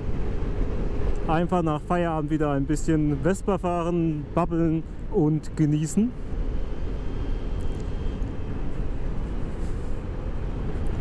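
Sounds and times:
wind and road noise: 0.0s - 11.0s.

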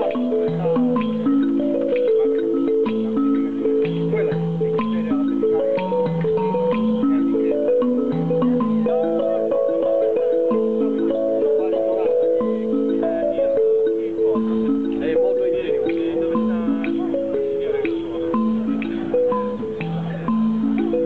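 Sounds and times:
faint voices: 0.0s - 21.0s
toy instrument melody: 0.0s - 21.0s.

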